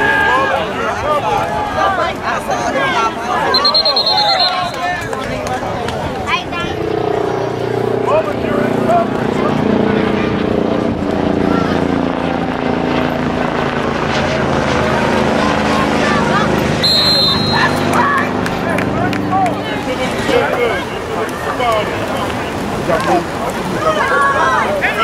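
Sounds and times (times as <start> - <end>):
voices calling out: 0.0 - 10.4, 14.4 - 25.0
referee's whistle: 3.5 - 5.0, 16.8 - 18.0
low engine drone: 5.7 - 20.3.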